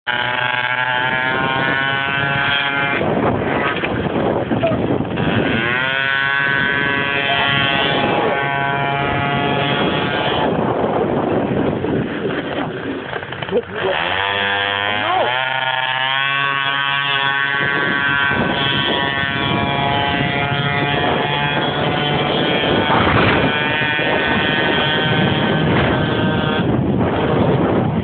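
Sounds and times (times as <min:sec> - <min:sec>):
moped engine revving: 0:00.1 - 0:28.0
wind noise on microphone: 0:00.1 - 0:28.0.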